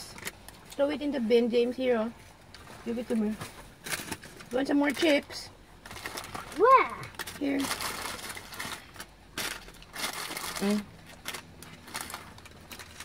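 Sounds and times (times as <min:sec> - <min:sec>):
paper packaging rustling: 0:02.6 - 0:05.2, 0:05.8 - 0:13.0.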